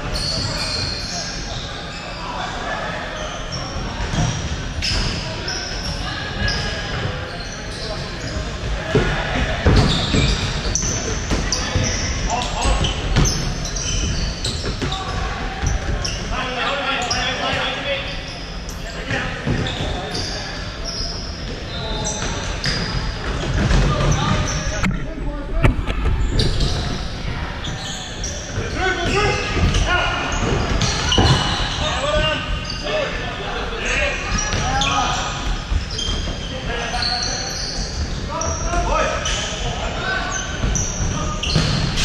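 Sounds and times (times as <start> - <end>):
sneaker squeaks: 0.0 - 42.0.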